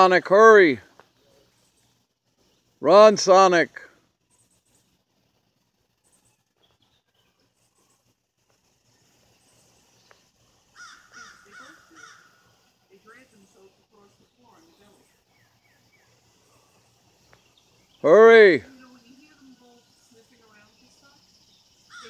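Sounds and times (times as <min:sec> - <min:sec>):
crows cawing: 0:10.7 - 0:12.6.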